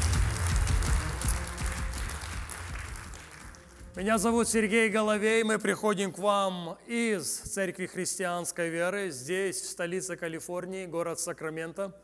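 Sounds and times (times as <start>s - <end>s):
audience applause: 0.0s - 4.3s
background music with bass: 0.0s - 4.8s.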